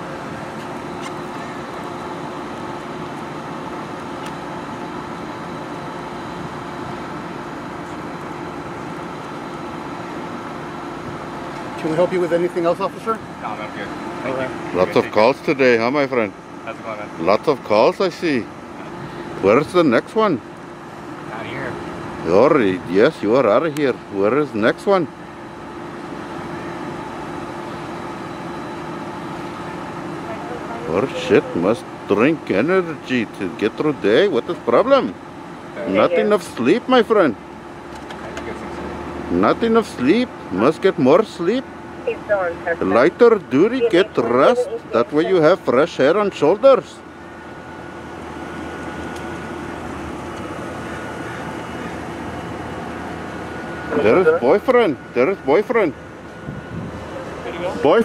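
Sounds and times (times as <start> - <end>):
car engine idling: 0.0 - 58.0
mechanical drone with high whine: 0.0 - 58.0.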